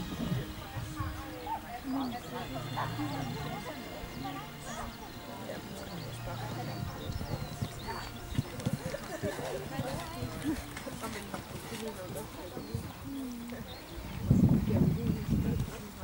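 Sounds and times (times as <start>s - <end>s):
hoofbeats on sand: 0.0s - 16.0s
people's voices: 0.0s - 16.0s.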